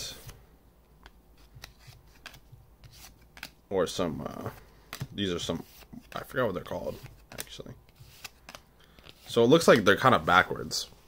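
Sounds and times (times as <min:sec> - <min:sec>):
cards being flicked: 0:01.0 - 0:03.6, 0:04.4 - 0:05.2, 0:07.0 - 0:09.8.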